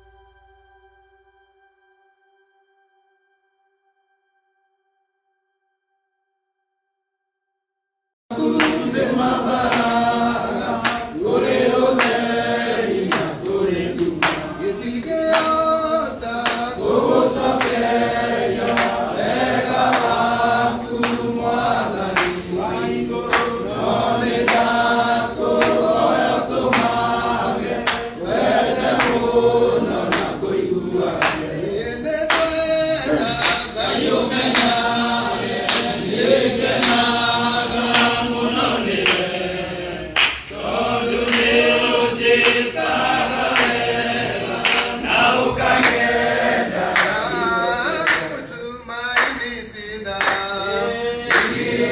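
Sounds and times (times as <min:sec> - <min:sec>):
men singing together: 0:08.3 - 0:51.9
hand clapping: 0:08.4 - 0:51.9.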